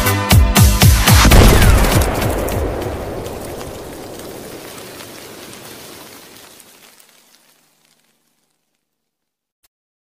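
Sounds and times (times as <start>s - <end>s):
rain hiss: 1.6s - 8.8s
faint crackles: 1.6s - 9.4s.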